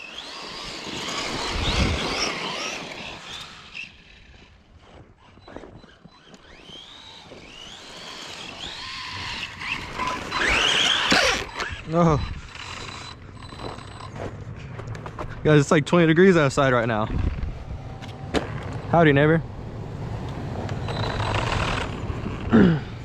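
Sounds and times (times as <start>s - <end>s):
electric motor whining: 0.0s - 14.1s, 20.2s - 23.0s.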